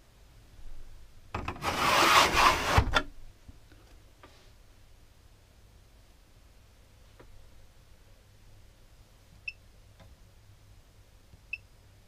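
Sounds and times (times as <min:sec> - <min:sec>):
pleated blind sliding in frame: 0:01.5 - 0:03.0.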